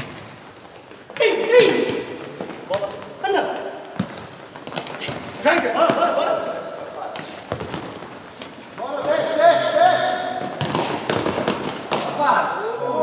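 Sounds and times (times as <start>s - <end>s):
ball kicked and bouncing: 3.9s - 6.2s, 7.2s - 8.1s, 10.5s - 12.1s.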